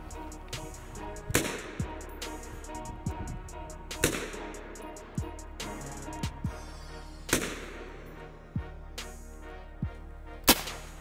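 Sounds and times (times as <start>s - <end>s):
music with deep bass beat: 0.0s - 11.0s
rifle shots: 1.3s - 1.8s, 4.0s - 4.5s, 7.3s - 7.9s, 10.5s - 11.0s.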